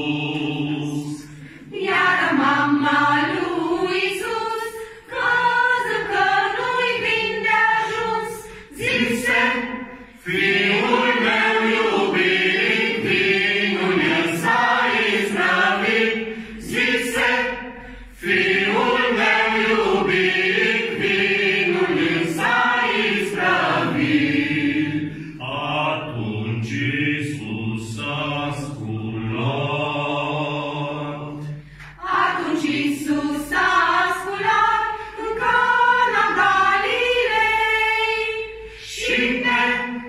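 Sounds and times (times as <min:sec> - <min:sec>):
group singing a carol in unison: 0:00.0 - 0:40.0.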